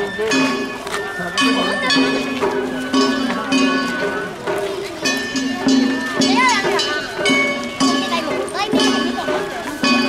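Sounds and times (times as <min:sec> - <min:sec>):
crowd voices: 0:00.0 - 0:10.0
taiko drums: 0:00.0 - 0:10.0.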